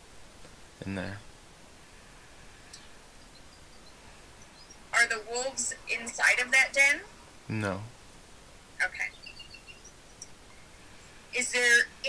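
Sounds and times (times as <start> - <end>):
small bird chirping: 2.7 - 5.6, 8.8 - 11.8.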